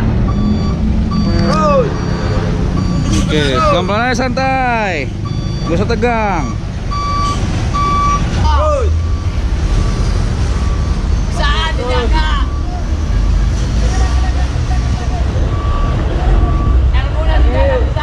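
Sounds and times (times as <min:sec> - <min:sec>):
diesel engine rumbling: 0:00.0 - 0:18.0
reversing alarm beeps: 0:00.3 - 0:03.2, 0:05.2 - 0:08.2, 0:09.0 - 0:11.0, 0:15.5 - 0:16.9
men calling out: 0:01.2 - 0:02.2, 0:03.0 - 0:06.5.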